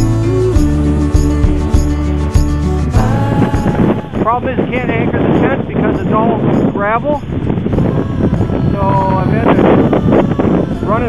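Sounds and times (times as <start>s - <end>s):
held sung notes: 0.0s - 11.0s
wind buffeting microphone: 0.0s - 11.0s
person's voice: 3.0s - 7.2s, 8.0s - 11.0s.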